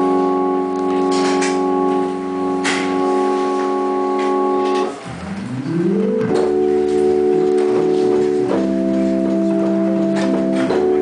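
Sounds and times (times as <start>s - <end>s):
jazz organ chords: 0.0s - 11.0s.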